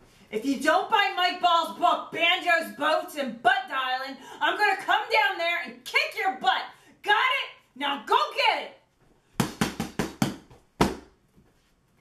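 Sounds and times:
boxing gloves smacking a pad: 9.4 - 11.1.

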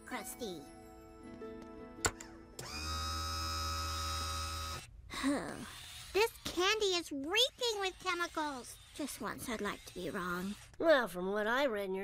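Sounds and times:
electric machine hum with high whine: 2.6 - 4.9.

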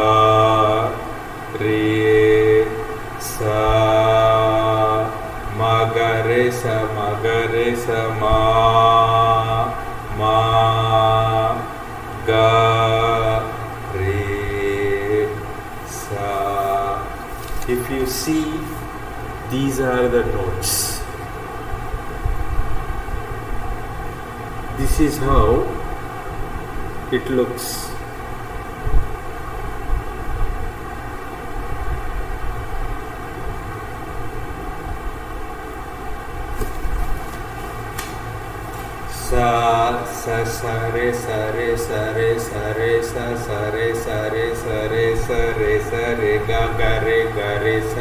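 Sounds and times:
man singing held notes: 0.0 - 21.2, 39.1 - 48.0.

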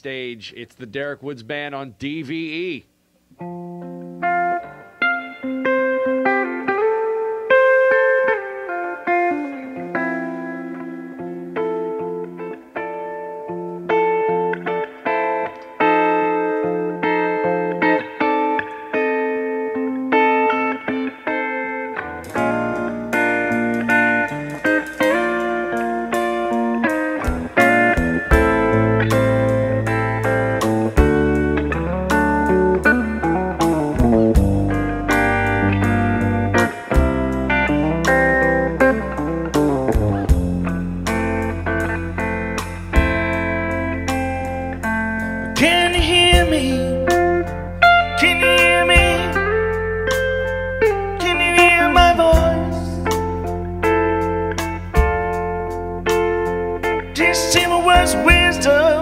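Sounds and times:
bass guitar: 0.0 - 59.0
guitar playing: 0.0 - 59.0
drums: 22.2 - 49.5, 50.1 - 59.0.

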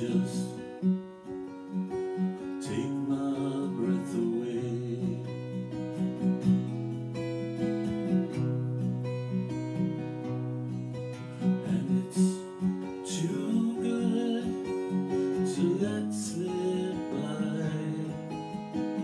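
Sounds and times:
man singing: 0.0 - 0.9, 2.6 - 5.7, 11.4 - 18.8
acoustic guitar playing: 0.0 - 19.0.

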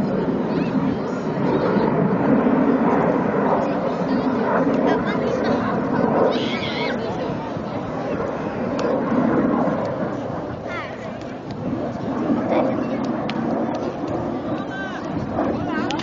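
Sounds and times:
distant jet engines: 0.0 - 16.0.

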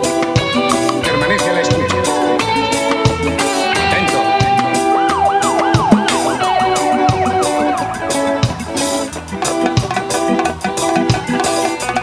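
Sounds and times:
rock band playing: 0.0 - 12.0
wailing siren effect: 3.7 - 9.1.

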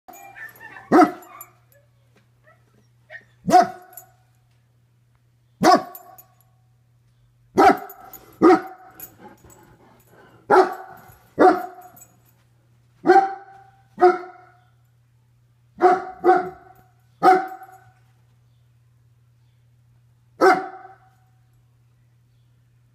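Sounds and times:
dog barking indoors: 0.1 - 4.3, 5.6 - 6.5, 7.5 - 12.3, 13.0 - 14.8, 15.7 - 18.1, 20.4 - 21.4.

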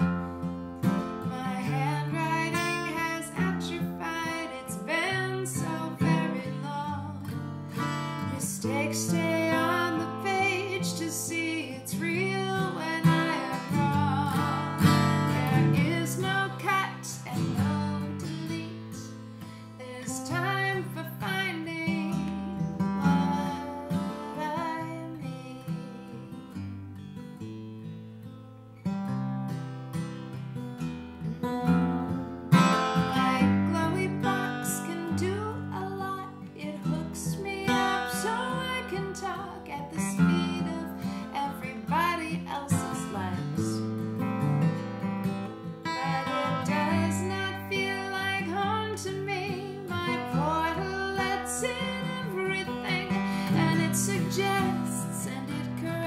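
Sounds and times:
acoustic guitar playing: 0.0 - 56.0
woman singing wordlessly: 1.2 - 7.5, 8.2 - 26.7, 32.9 - 44.0, 45.8 - 56.0.

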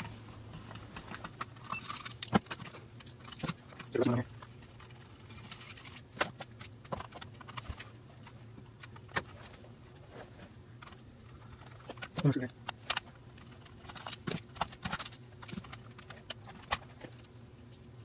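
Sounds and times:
hands handling plastic radio parts: 0.0 - 17.8.

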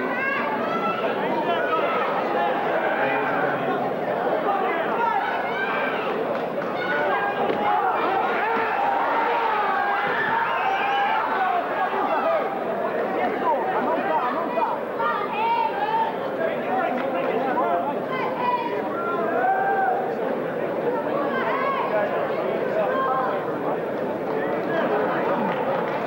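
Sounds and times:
crowd shouting and talking: 0.0 - 26.0.

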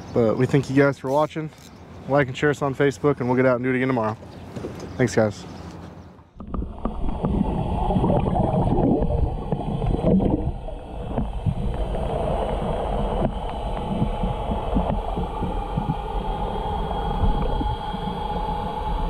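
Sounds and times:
underwater rumble and gurgling: 6.4 - 19.0.

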